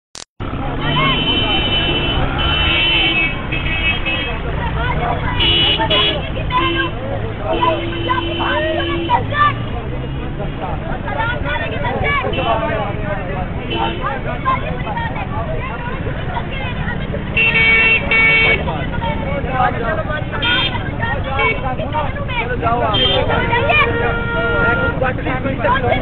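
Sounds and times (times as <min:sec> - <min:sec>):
street traffic: 0:00.2 - 0:26.0
men talking and shouting: 0:00.4 - 0:26.0
high-pitched vehicle horn toots: 0:00.9 - 0:04.5, 0:05.2 - 0:09.4, 0:22.9 - 0:25.0.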